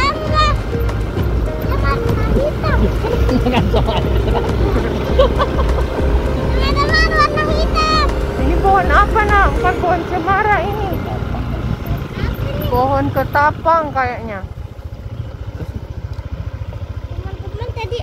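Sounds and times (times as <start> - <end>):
motorcycle engine rumbling: 0.0 - 18.0.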